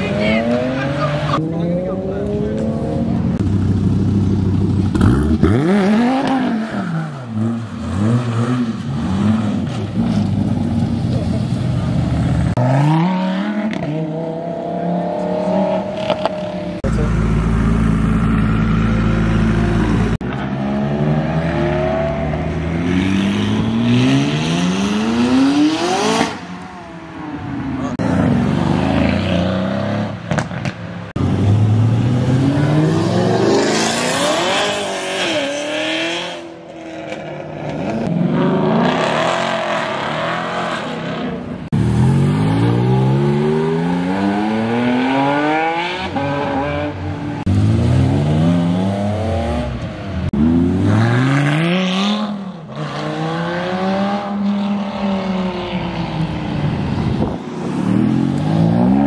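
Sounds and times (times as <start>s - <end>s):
sports cars accelerating hard: 27.6s - 59.0s.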